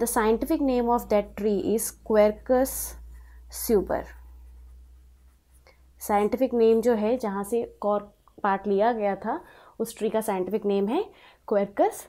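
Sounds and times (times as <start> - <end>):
marker pen writing on paper: 3.8 - 7.1.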